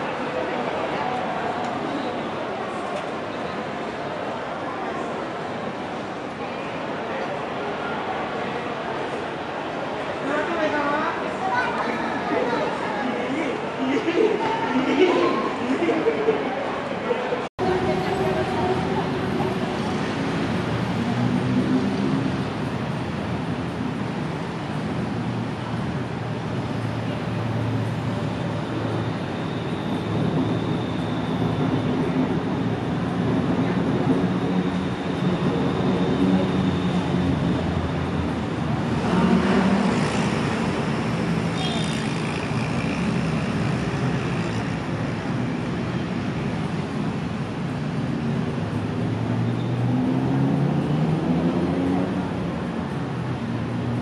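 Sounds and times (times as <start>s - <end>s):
passing vehicle engines: 17.6s - 54.0s
high squeal: 28.2s - 32.1s.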